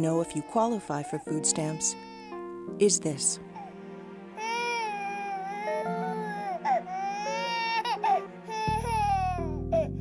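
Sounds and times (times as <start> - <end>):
infant crying: 0.0 - 2.4, 3.5 - 3.8, 4.4 - 9.9
background music low notes: 0.0 - 10.0.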